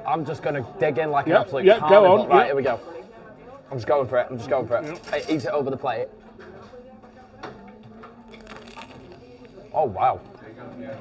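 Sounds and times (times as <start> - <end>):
faint background murmur: 0.0 - 11.0.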